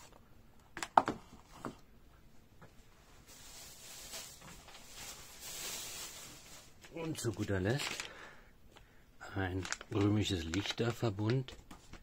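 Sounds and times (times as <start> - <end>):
packaging knocks and clicks: 9.6 - 12.0.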